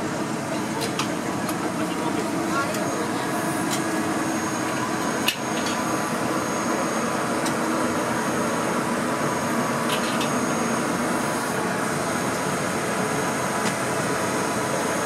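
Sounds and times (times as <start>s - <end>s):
electric locomotive humming: 0.0s - 15.0s.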